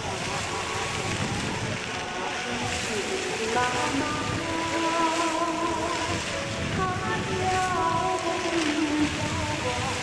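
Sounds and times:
slow music of held notes: 0.0s - 10.0s
water jets rushing and splashing: 0.0s - 10.0s.

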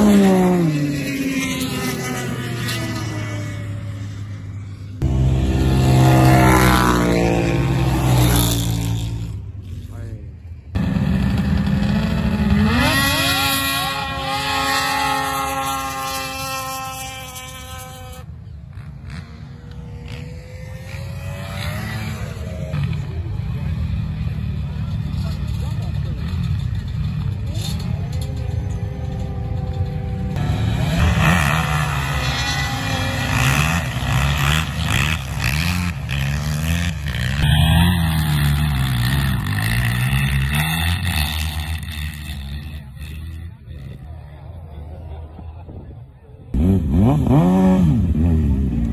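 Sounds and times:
dirt bike engine revving: 0.0s - 10.0s, 10.8s - 44.3s, 46.5s - 48.9s
snowmobile engine revving: 0.0s - 10.1s, 10.8s - 45.8s, 46.5s - 48.9s.

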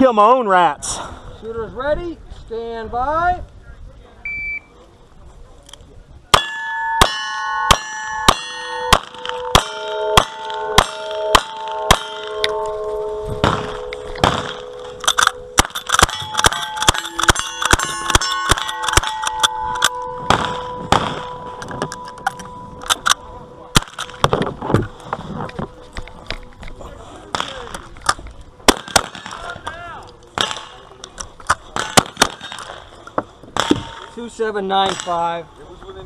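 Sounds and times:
gunshots: 6.4s - 12.4s, 13.4s - 21.4s, 22.9s - 24.4s, 27.3s - 27.8s, 28.7s - 29.6s, 30.4s - 30.8s, 31.7s - 32.9s, 33.6s - 34.1s
steel target clanging: 6.4s - 25.0s, 33.6s - 35.4s.

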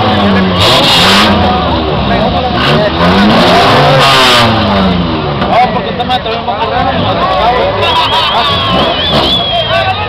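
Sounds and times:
car engines idling: 0.0s - 10.0s
crowd shouting and talking: 0.0s - 10.0s.

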